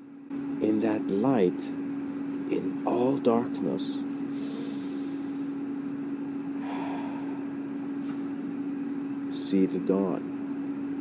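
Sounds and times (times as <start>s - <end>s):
low electrical hum: 0.0s - 11.0s
soft breath: 4.3s - 5.4s, 6.6s - 8.2s.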